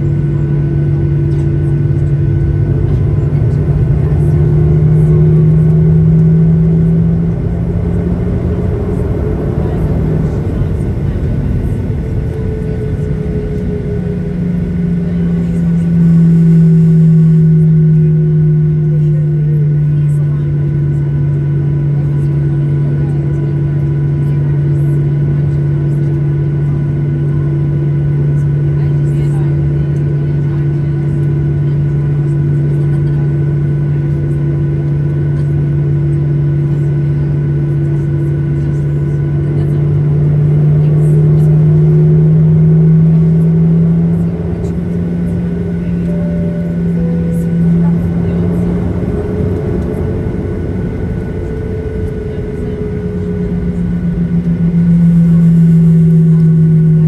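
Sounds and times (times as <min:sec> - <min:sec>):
jet engines humming in cabin: 0:00.0 - 0:57.0.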